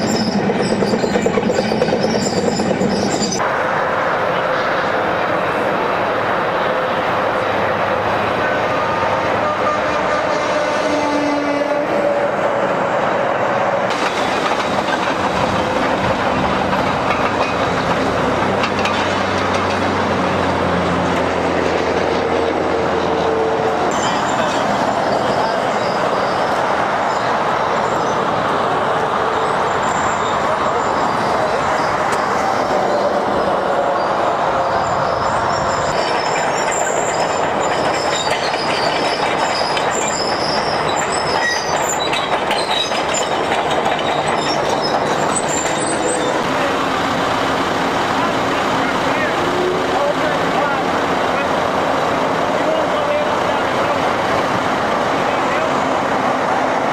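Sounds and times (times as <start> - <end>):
steel tracks clanking: 0.0 - 56.9.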